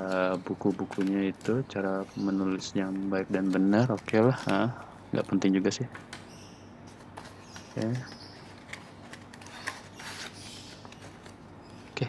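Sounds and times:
packaging rustling: 0.0 - 5.4, 6.9 - 12.0
paper crinkle: 0.0 - 5.5, 6.9 - 12.0.

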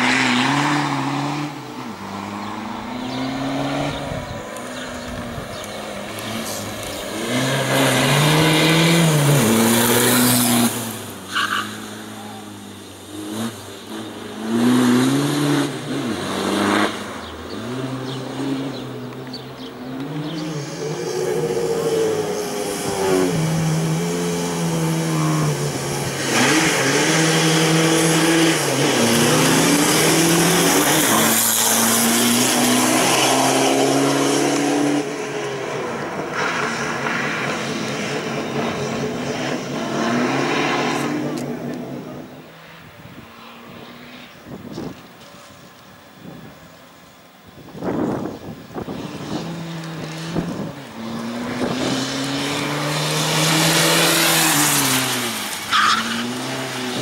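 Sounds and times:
race car engine revving: 0.0 - 42.5, 47.8 - 57.0.

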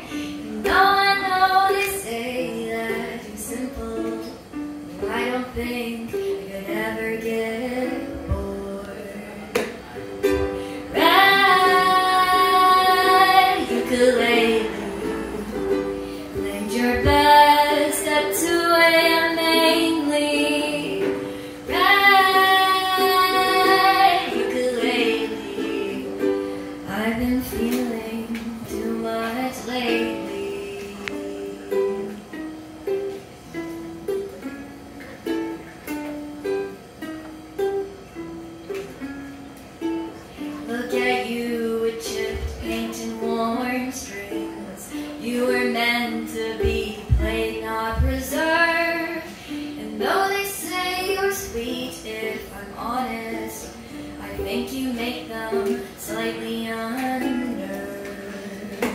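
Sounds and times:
woman singing long notes: 0.0 - 32.4, 40.2 - 58.9
ukulele playing: 0.0 - 58.9.

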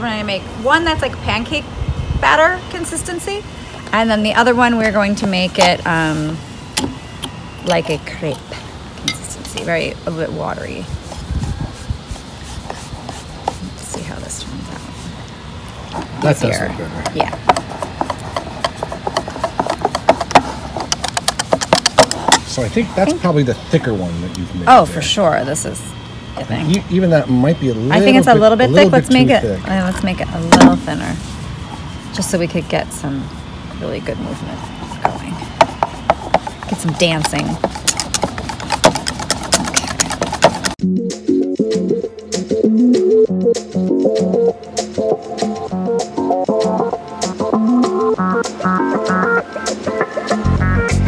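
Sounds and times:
electronic music: 40.8 - 51.0.

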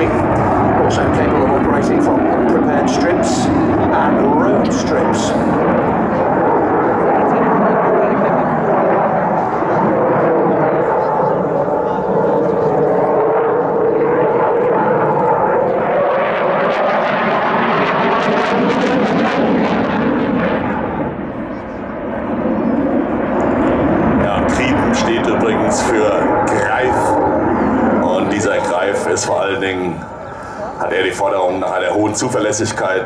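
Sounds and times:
jet engine rumble: 0.0 - 33.0.

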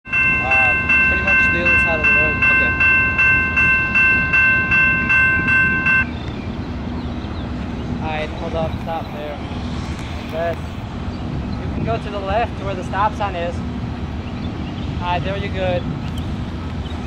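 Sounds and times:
crossing warning bell ringing: 0.0 - 6.2
steady low rumble: 0.0 - 17.0.

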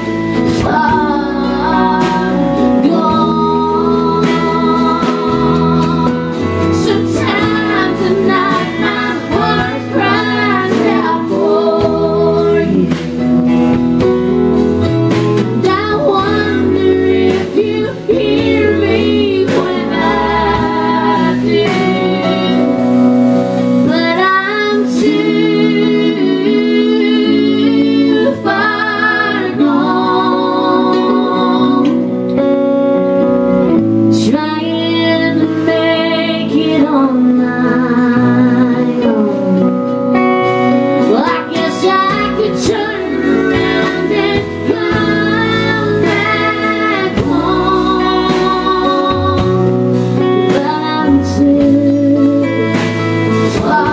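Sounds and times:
woman singing: 0.0 - 13.5, 15.6 - 23.1, 23.7 - 32.1, 34.1 - 53.9
country band playing: 0.0 - 53.9.

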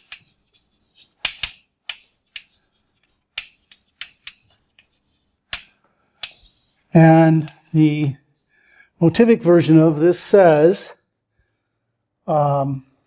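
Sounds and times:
chalk tapping on blackboard: 0.0 - 7.8
chalk scraping: 0.0 - 8.6.

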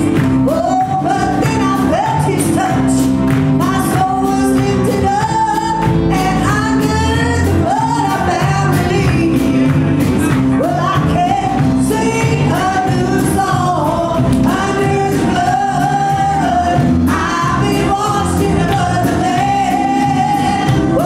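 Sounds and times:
group singing gospel song: 0.0 - 9.8, 10.5 - 21.0
live band bass and drums: 0.0 - 21.0.

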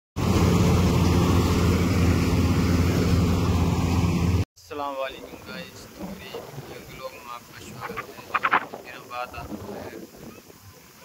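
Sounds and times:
combine harvester droning: 0.2 - 4.4.

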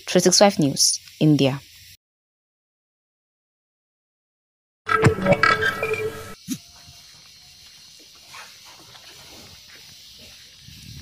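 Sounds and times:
steady hiss: 0.0 - 2.0, 6.4 - 11.0.

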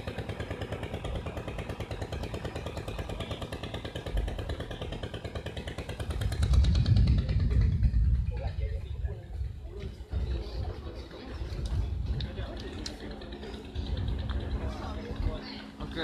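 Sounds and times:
engine running with even pulse: 0.0 - 16.0
deep rumble: 5.7 - 16.0.

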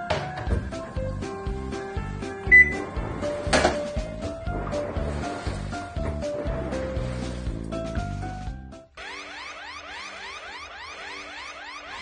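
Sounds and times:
background music with beat: 0.0 - 4.6
washing machine panel beep: 2.5 - 2.8.

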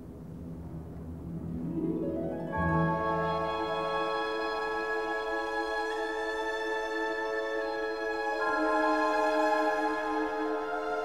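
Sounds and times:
orchestra playing low notes: 0.0 - 11.0.

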